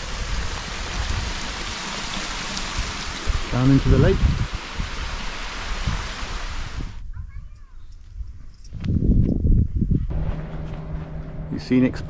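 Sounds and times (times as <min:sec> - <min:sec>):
wind buffeting microphone: 0:03.2 - 0:10.7.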